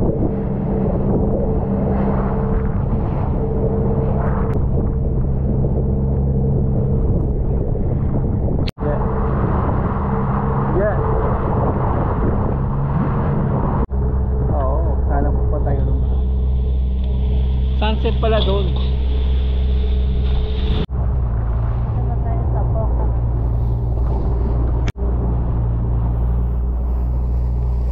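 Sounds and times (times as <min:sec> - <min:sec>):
boat engine droning: 0:00.0 - 0:27.9.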